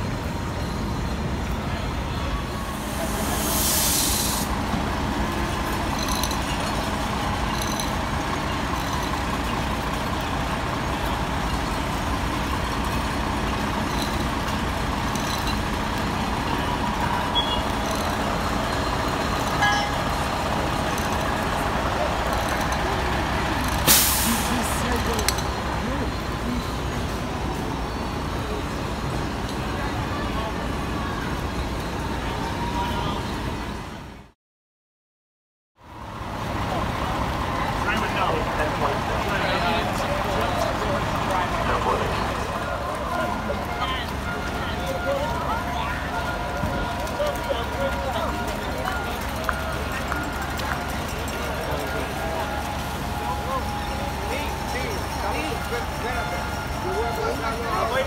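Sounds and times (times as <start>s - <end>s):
diesel engines idling: 0.0s - 34.3s, 35.8s - 58.0s
air hisses: 2.7s - 4.7s.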